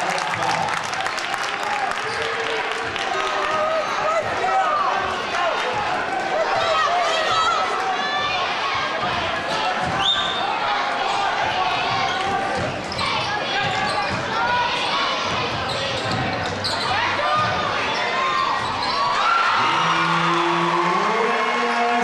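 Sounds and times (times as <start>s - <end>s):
crowd chatter and shouts: 0.0s - 22.0s.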